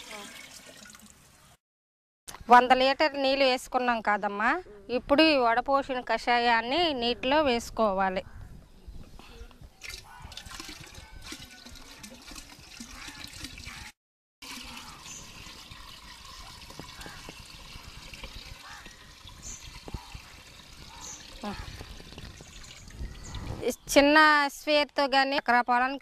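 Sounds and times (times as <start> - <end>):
liquid pouring into a drum: 0.0 - 1.2, 9.8 - 23.5.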